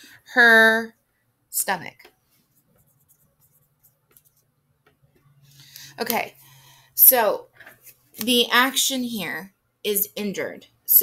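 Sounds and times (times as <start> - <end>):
marker writing on whiteboard: 2.1 - 5.3.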